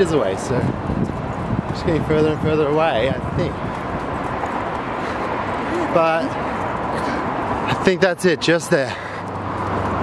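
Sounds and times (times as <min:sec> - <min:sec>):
wind on microphone: 0:00.0 - 0:05.6
freeway traffic hiss: 0:00.0 - 0:10.0.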